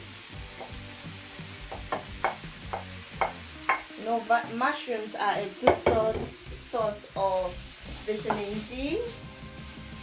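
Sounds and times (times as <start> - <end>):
faint sizzle in oil: 0.0 - 10.0
wooden spatula scraping and knocking: 7.8 - 9.2.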